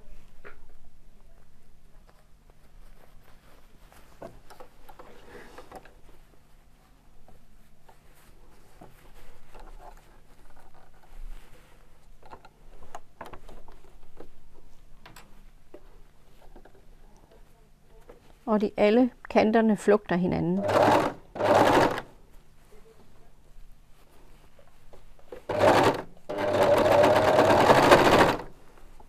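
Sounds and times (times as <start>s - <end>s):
faint steady low hum: 0.0s - 29.0s
knit fabric rustling: 1.4s - 19.0s, 20.4s - 29.0s.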